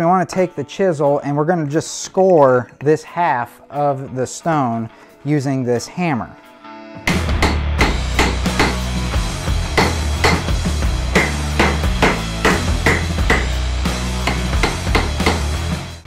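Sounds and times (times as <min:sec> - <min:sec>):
background music: 0:00.0 - 0:16.0
hammer striking chisel on concrete: 0:07.1 - 0:08.9, 0:09.7 - 0:10.5, 0:11.2 - 0:13.6, 0:14.2 - 0:15.5.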